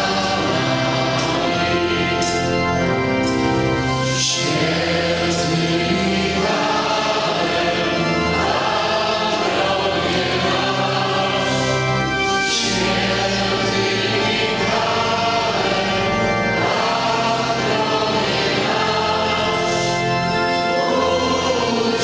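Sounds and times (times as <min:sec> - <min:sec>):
many voices singing a hymn: 0:00.0 - 0:03.2, 0:04.0 - 0:22.0.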